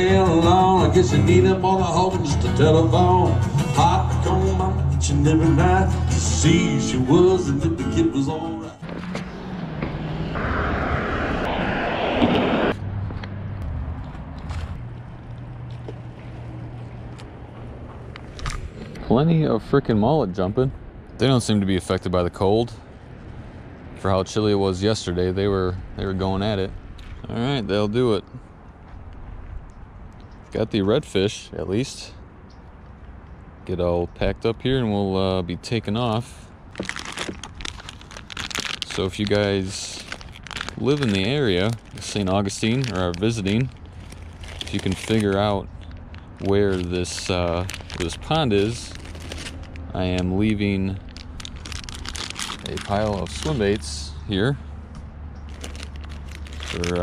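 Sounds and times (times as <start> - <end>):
loud rushing vehicle noise: 0.0 - 21.6, 22.6 - 27.2, 36.5 - 57.0
plastic bag crinkling: 36.7 - 53.9, 55.5 - 57.0.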